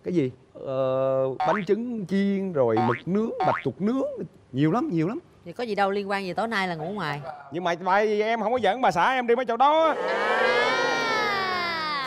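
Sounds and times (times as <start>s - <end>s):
person exclaiming ooh: 10.1s - 12.0s.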